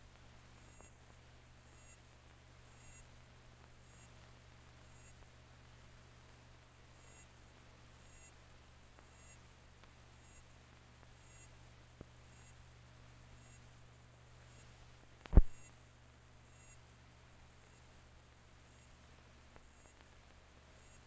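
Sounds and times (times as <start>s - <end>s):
faint repeating ticks: 0.1s - 2.1s, 2.7s - 4.2s, 4.8s - 5.3s, 7.0s - 7.3s, 8.0s - 8.4s, 9.0s - 12.6s, 16.5s - 16.8s, 18.7s - 21.0s
small click: 15.2s - 15.7s
loud low thump: 15.3s - 15.6s.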